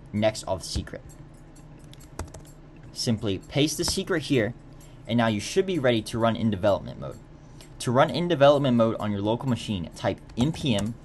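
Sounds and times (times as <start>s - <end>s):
faint hum: 0.0s - 11.0s
keyboard key presses: 1.9s - 2.5s.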